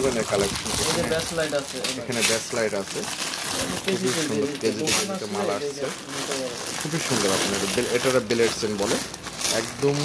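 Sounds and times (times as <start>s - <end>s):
metal chains clinking: 3.3s - 10.0s.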